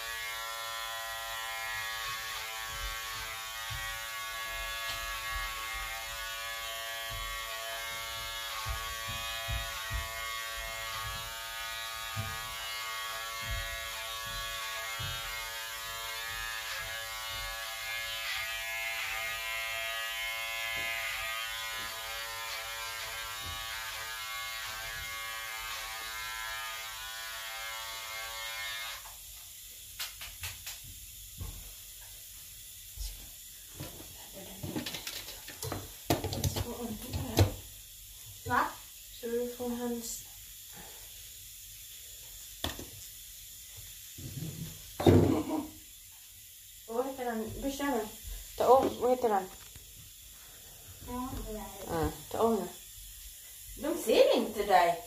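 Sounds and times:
electric hair clipper buzzing: 0.0s - 29.3s.

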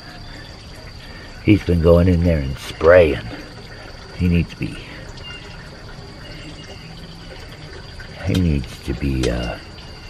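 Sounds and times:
low even hiss: 0.0s - 10.0s.

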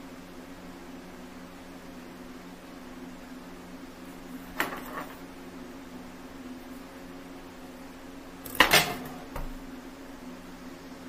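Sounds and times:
kitchen knife clattering on countertop: 8.5s - 9.2s.

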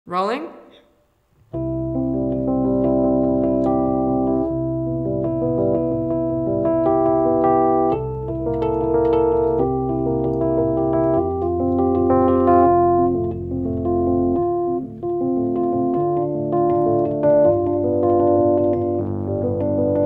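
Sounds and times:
electric piano chords: 1.5s - 20.0s.

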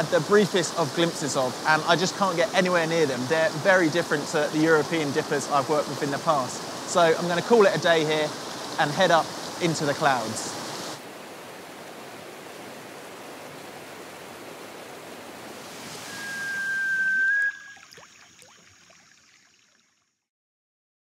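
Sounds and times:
river rushing over boulders: 0.0s - 17.6s.

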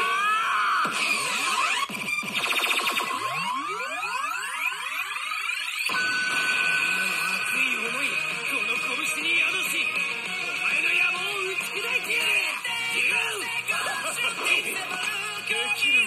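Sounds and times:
pachinko machine electronic effects: 0.0s - 16.0s.

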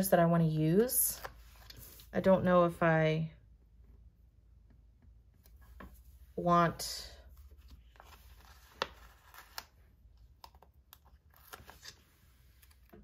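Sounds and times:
paper rustling: 7.4s - 9.8s.

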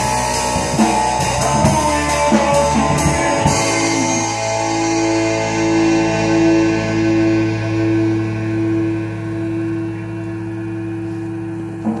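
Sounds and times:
band chord ringing through amplifiers: 0.0s - 12.0s
electrical hum: 0.0s - 12.0s.

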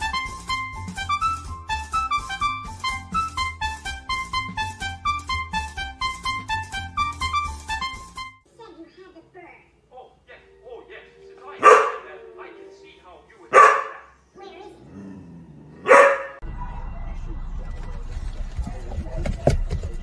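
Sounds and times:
television: 0.0s - 20.0s
dog barking: 11.6s - 12.1s, 13.5s - 14.2s, 15.8s - 16.4s.

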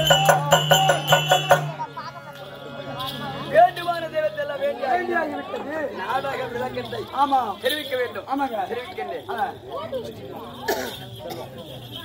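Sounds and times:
background voices chattering: 0.0s - 12.0s.

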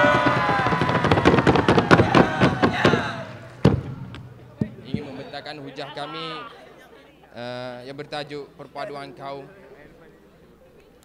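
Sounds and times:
audience clapping and cheering: 0.0s - 4.3s
sharp knocks: 0.0s - 5.2s.

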